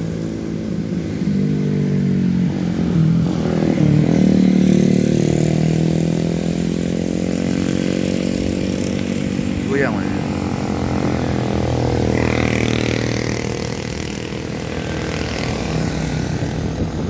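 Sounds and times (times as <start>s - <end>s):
motorcycles riding past: 0.0s - 17.0s.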